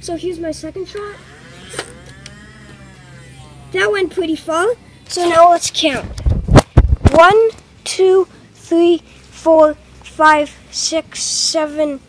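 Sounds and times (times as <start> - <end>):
flywheel motors whirring: 0.9 - 5.3.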